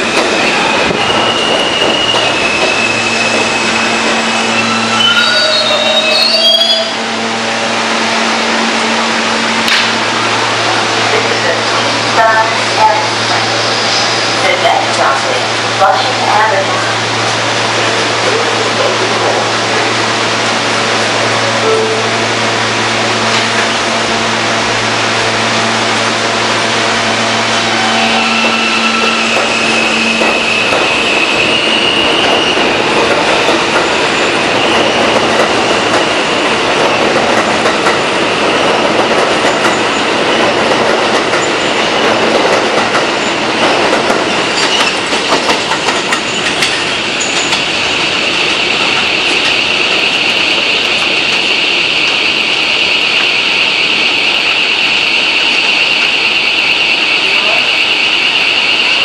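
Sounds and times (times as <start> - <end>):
subway train electrical hum: 0.0 - 59.0
train wheels rumbling on track: 0.0 - 59.0
high-pitched wheel squeal: 0.4 - 7.0, 27.5 - 32.7.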